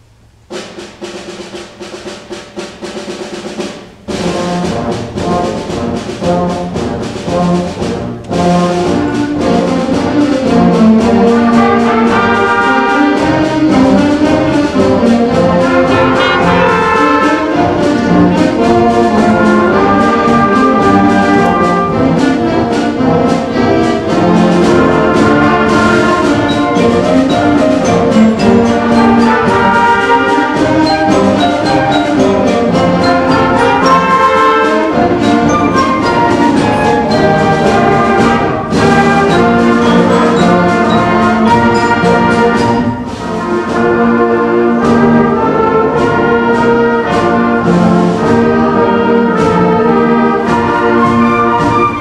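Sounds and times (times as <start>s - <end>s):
concert band playing a march: 0.0s - 52.0s.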